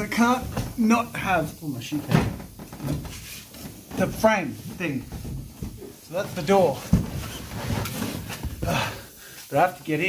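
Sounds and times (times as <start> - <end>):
knocks and scuffing on panels: 2.0 - 8.8.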